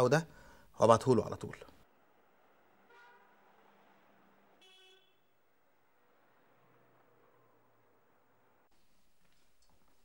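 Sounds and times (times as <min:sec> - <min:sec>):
faint car horn toots: 0:02.8 - 0:03.4, 0:04.6 - 0:05.4.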